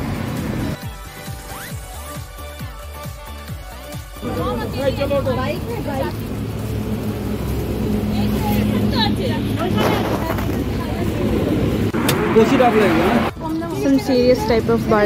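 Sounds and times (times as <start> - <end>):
vehicle engine humming: 0.0 - 0.9, 3.3 - 15.0
people talking: 4.2 - 6.3, 8.0 - 11.6, 12.2 - 15.0.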